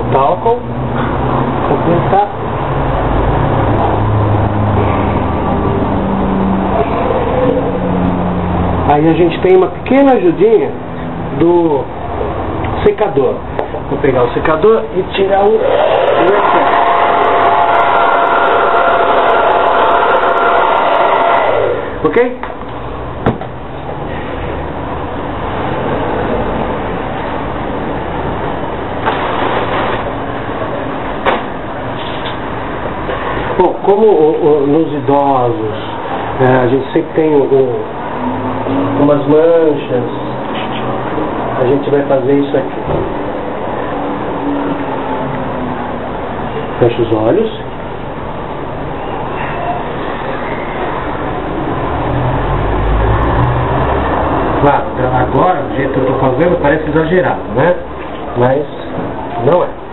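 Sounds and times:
hair dryer blowing: 15.6 - 22.0.

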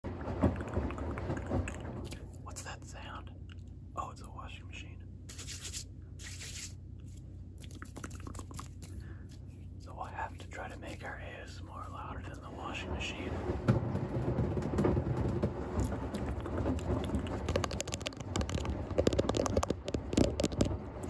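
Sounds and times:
washing machine humming: 0.0 - 5.4, 6.0 - 21.0.

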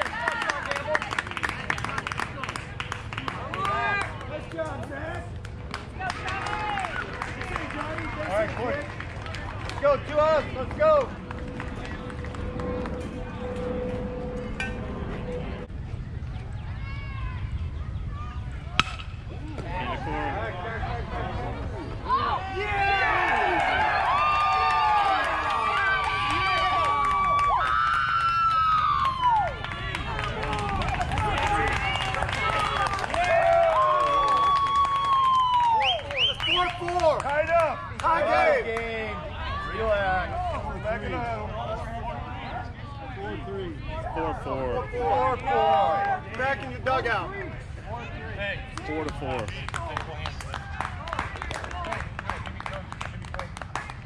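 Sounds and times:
crowd shouting and cheering: 0.0 - 1.0, 5.7 - 15.4, 16.5 - 49.9.

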